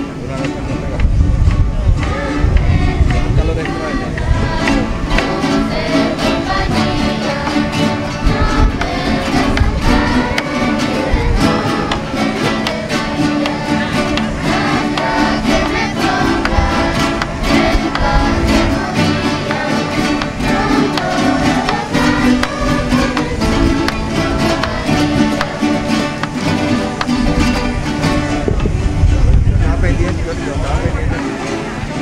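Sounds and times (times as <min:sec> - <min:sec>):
plucked string instruments: 0:00.0 - 0:32.0
strummed guitars: 0:00.0 - 0:32.0
violin: 0:00.0 - 0:32.0
drum: 0:00.4 - 0:28.4
voices singing along: 0:01.6 - 0:28.6.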